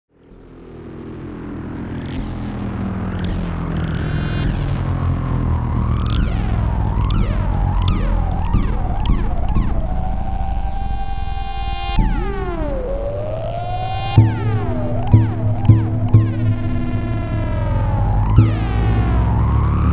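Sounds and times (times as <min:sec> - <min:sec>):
low synthesizer drone: 0:00.2 - 0:19.9
warbling synthesizer tone: 0:05.8 - 0:19.9.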